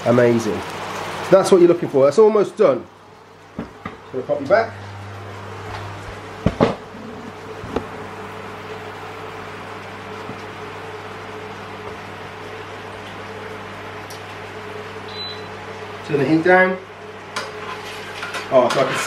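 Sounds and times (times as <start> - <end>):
induction hob humming: 0.0 - 19.0.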